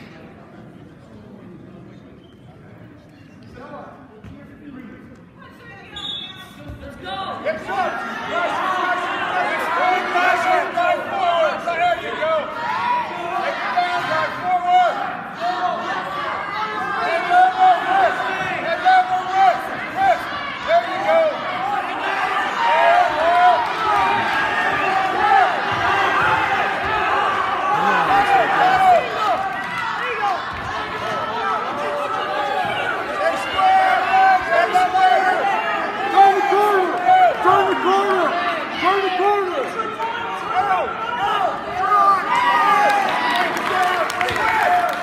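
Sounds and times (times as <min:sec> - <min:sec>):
spectators shouting and cheering: 0:05.9 - 0:45.0.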